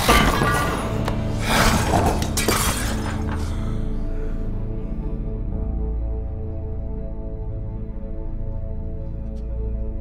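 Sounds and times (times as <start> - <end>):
something shattering: 0.0 - 3.4
film score low tones: 0.0 - 10.0.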